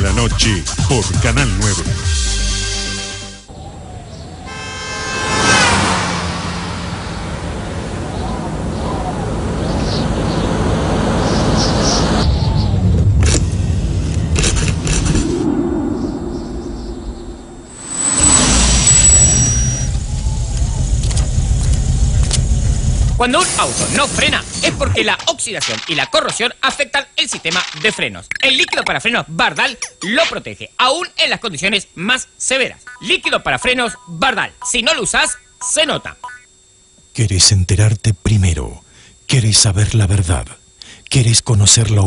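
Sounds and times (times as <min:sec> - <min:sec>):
music: 0:00.0 - 0:03.5
car engine and tyre noise: 0:03.5 - 0:16.4, 0:17.7 - 0:23.2
passing horn-like tone: 0:04.4 - 0:07.7, 0:17.7 - 0:20.8
thin high whine: 0:13.2 - 0:28.8, 0:29.4 - 0:42.0
sharp clicks: 0:25.1 - 0:26.2, 0:27.3 - 0:28.9.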